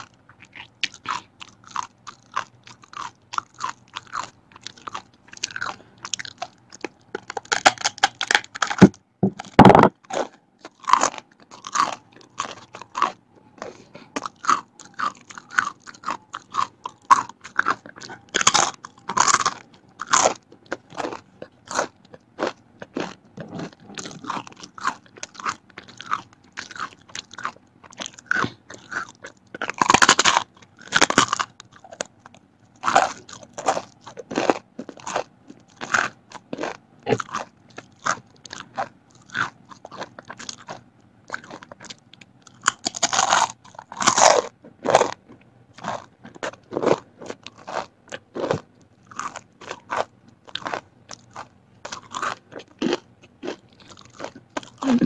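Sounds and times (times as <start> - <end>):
crackers crunching being chewed: 0.0 - 55.0.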